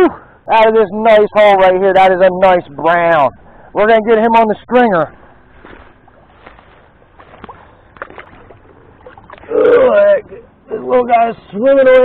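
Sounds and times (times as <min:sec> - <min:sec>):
water sloshing: 0:05.2 - 0:10.6.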